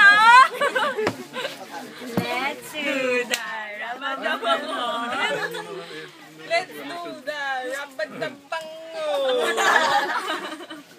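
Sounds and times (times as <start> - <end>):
group of people talking: 0.0 - 10.9
people laughing: 0.1 - 2.2, 4.2 - 6.2, 9.0 - 10.9.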